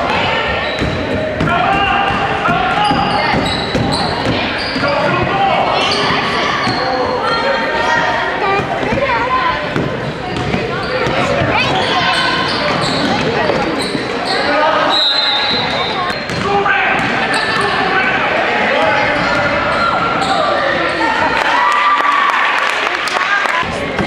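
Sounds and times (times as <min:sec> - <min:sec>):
echoing voices in a hall: 0:00.0 - 0:24.0
referee's whistle: 0:14.3 - 0:16.2.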